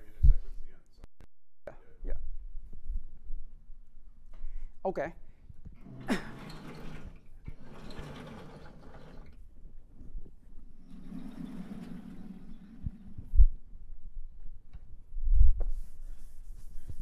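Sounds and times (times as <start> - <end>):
chalk scraping on blackboard: 15.7 - 17.0.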